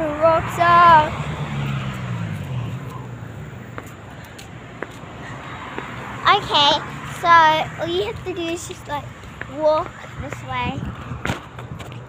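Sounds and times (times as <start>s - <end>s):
car driving past: 0.0s - 7.8s.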